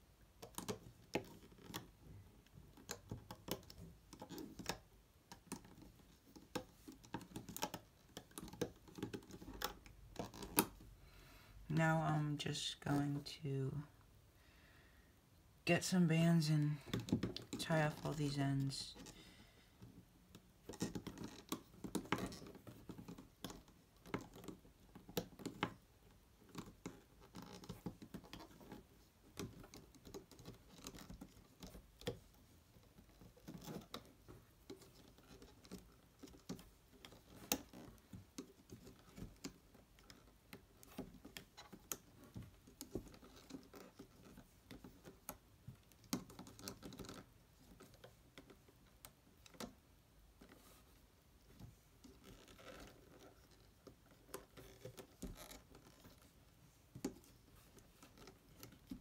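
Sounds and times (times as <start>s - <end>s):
loom hook clicks and scratches: 20.6s - 49.7s.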